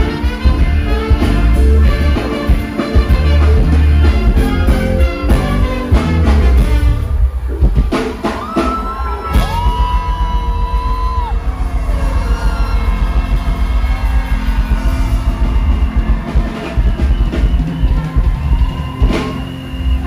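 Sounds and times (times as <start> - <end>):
live band playing amplified music: 0.0 - 20.0.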